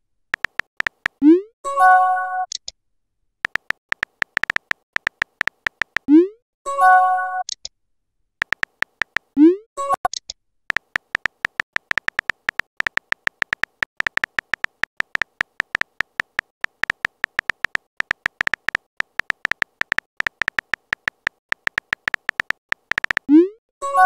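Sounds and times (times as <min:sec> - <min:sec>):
keyboard tap clicks: 0:00.4 - 0:01.2, 0:03.4 - 0:06.1, 0:08.4 - 0:09.3, 0:10.7 - 0:23.3.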